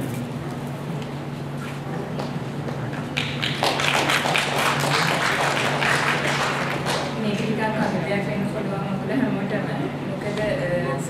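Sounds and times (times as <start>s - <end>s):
audience applauding: 3.1s - 7.2s.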